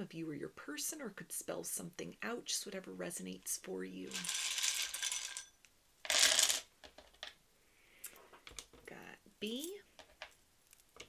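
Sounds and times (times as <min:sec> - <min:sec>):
tiles clattering onto wooden table: 0:04.1 - 0:05.5, 0:06.1 - 0:07.4, 0:08.3 - 0:08.9, 0:10.0 - 0:10.4
wooden tiles rattling: 0:04.1 - 0:05.5, 0:06.1 - 0:07.4, 0:08.2 - 0:08.9, 0:09.9 - 0:11.0.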